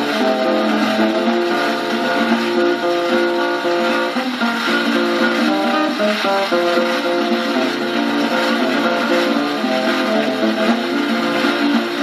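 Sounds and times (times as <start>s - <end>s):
picked acoustic guitar: 0.0s - 12.0s
record surface hiss: 0.0s - 12.0s.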